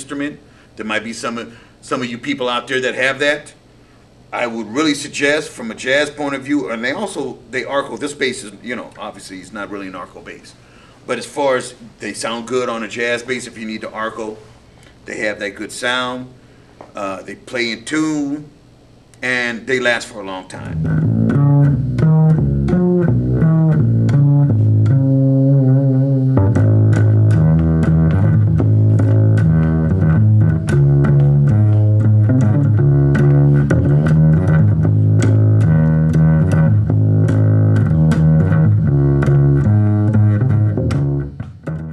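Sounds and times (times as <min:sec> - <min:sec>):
upright bass playing low notes: 0:20.5 - 0:41.9.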